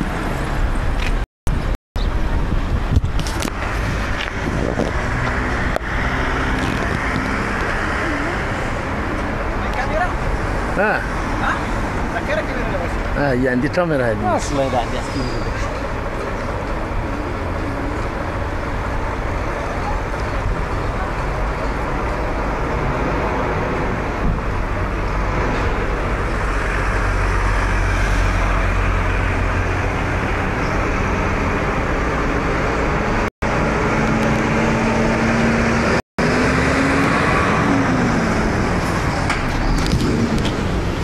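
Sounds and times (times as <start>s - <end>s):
heavy vehicle engines idling: 0.0s - 41.0s
street traffic: 0.0s - 41.0s.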